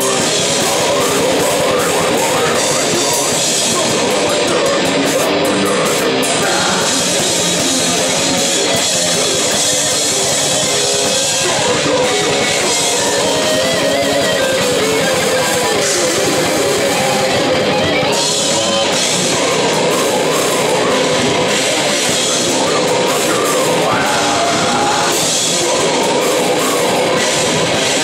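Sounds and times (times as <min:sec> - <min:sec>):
distorted electric guitars: 0:00.0 - 0:28.0
drum kit: 0:00.0 - 0:28.0.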